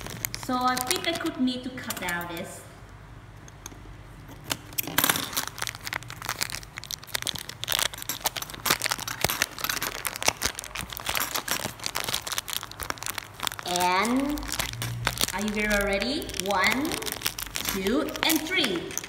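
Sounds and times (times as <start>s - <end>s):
plastic packaging crinkling: 0.0s - 1.4s, 4.3s - 19.0s.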